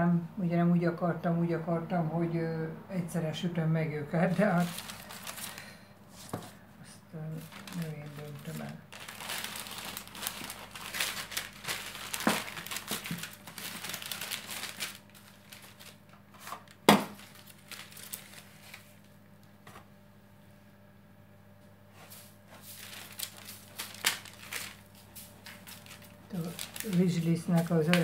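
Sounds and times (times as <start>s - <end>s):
baking paper crinkling: 4.1s - 6.6s, 7.3s - 19.2s, 22.0s - 28.0s.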